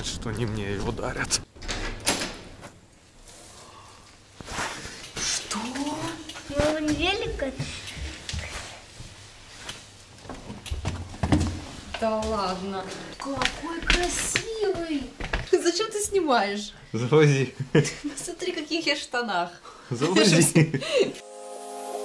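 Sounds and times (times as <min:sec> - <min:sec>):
bicycle knocks and clatter: 0:10.3 - 0:12.0.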